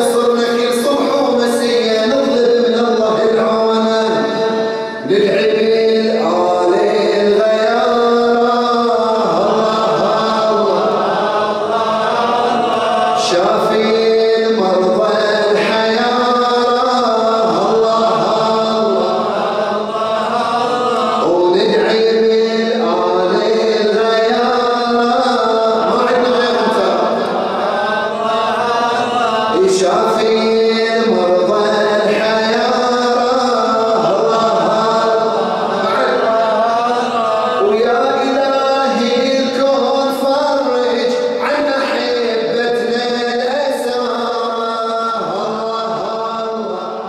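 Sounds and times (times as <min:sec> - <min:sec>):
man chanting into microphone: 0:00.0 - 0:47.0.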